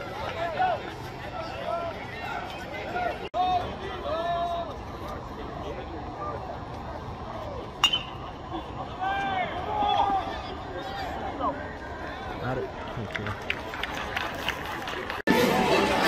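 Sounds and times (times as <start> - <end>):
crowd chatter: 0.0 - 16.0
metal bat striking ball: 7.8 - 8.2.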